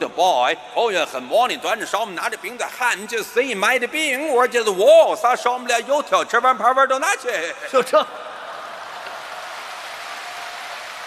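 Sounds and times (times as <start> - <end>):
audience applauding: 8.2 - 11.0.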